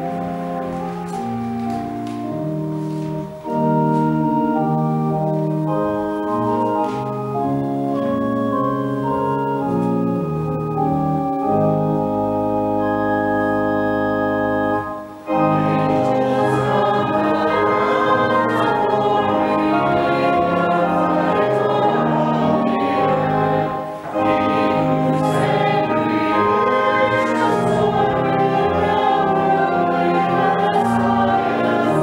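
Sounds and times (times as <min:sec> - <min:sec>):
organ chords: 0:00.0 - 0:32.0
congregation singing a hymn: 0:15.2 - 0:32.0.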